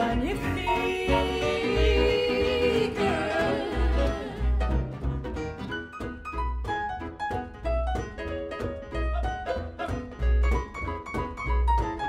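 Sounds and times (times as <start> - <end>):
double bass notes: 0.0 - 12.0.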